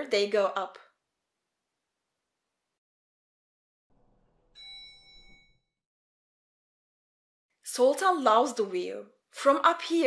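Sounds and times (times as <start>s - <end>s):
bright elevator chime: 4.4s - 5.8s.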